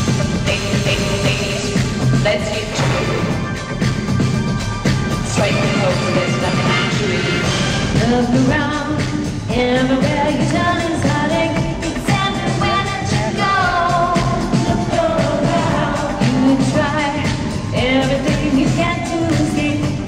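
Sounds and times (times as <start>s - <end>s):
dance-pop concert music: 0.0s - 20.0s
woman singing: 0.4s - 3.4s, 5.2s - 20.0s.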